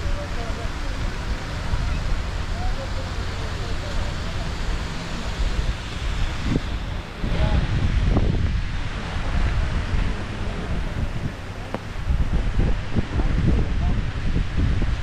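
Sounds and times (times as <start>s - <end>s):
wind buffeting microphone: 5.2s - 15.0s.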